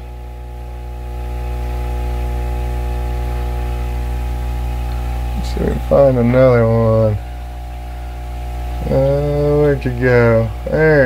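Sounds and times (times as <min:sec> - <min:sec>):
aquarium equipment humming: 0:00.0 - 0:11.0.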